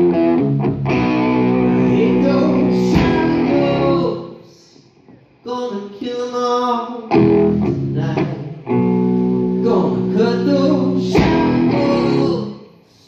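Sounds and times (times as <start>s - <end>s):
live rock band playing: 0.0s - 4.0s, 10.9s - 12.3s
electric guitar chords: 0.0s - 4.2s, 7.1s - 12.6s
drum hit: 2.9s - 3.4s.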